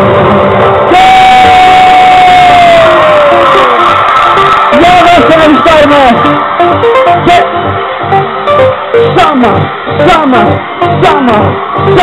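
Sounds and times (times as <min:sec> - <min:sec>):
crowd cheering and shouting: 0:00.0 - 0:12.0
live pop music: 0:00.0 - 0:12.0.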